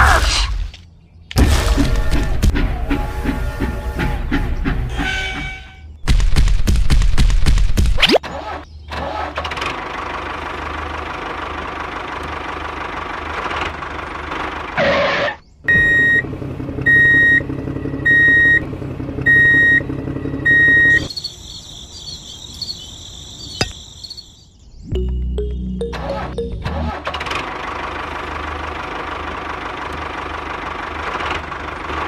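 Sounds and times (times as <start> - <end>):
high electronic beeps: 23.4 - 26.9
high warbling electronic tone: 24.9 - 27.0.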